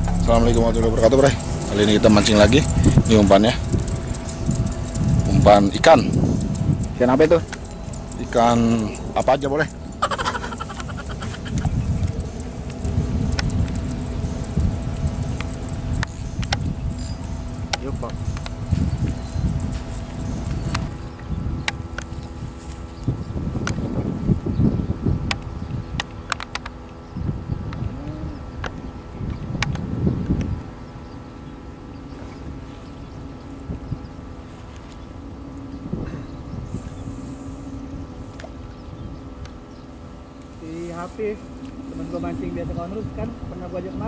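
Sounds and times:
sharp ticks: 0:00.0 - 0:22.4
wind buffeting microphone: 0:00.0 - 0:44.0
electric motor buzzing hum: 0:10.8 - 0:26.4.

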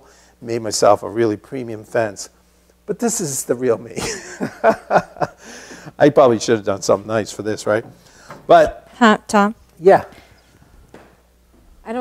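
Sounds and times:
soft footsteps on floor: 0:10.0 - 0:11.9.

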